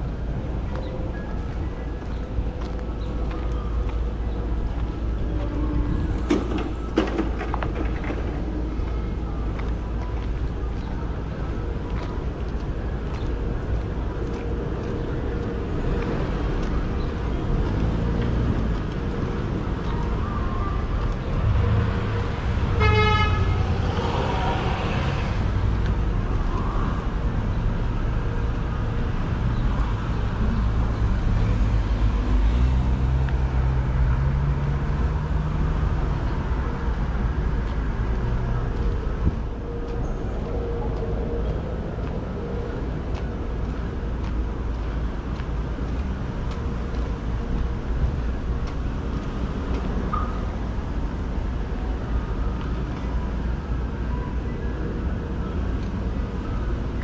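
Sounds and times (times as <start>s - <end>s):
street traffic rumble: 0.0s - 57.0s
car horn toot: 22.8s - 23.6s.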